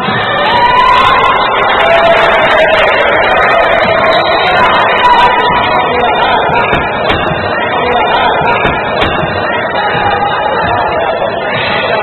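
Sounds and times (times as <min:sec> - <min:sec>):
crowd noise in gym: 0:00.0 - 0:12.0.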